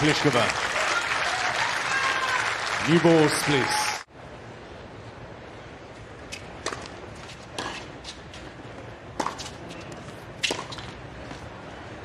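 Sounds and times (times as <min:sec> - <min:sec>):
low crowd hum: 0:00.0 - 0:12.0
tennis ball struck by rackets: 0:06.3 - 0:08.5, 0:09.1 - 0:11.4.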